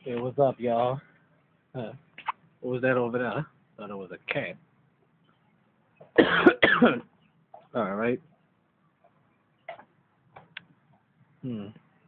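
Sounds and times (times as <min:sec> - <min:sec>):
person coughing: 0:06.2 - 0:07.0.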